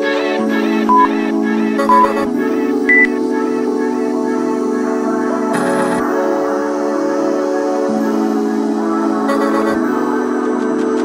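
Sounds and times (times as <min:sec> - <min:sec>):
background music: 0:00.0 - 0:11.0
interval timer beeps: 0:00.9 - 0:01.1, 0:01.8 - 0:02.3, 0:02.9 - 0:03.1, 0:09.3 - 0:09.8.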